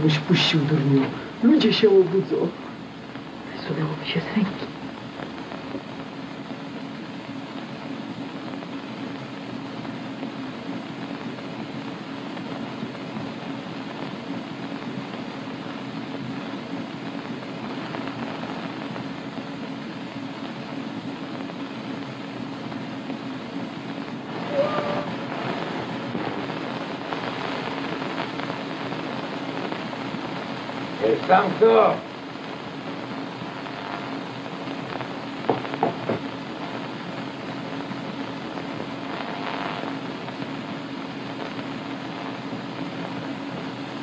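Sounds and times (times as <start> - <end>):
film soundtrack hiss: 0.0 - 44.0
low hum: 24.2 - 27.1.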